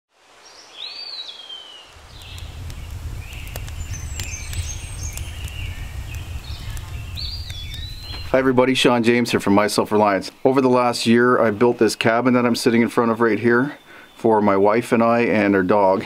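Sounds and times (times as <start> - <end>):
birds calling: 0.5 - 16.0
steady low rumble: 1.9 - 9.0.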